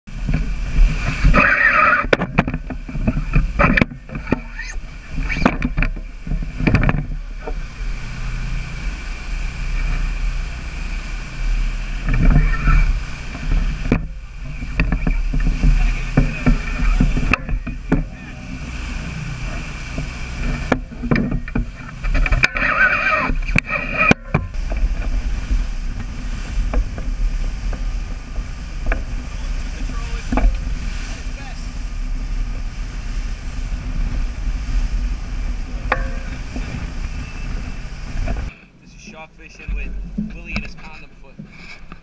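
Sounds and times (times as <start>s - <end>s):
rushing water of wake: 0.0s - 42.0s
boat engines droning: 0.1s - 42.0s.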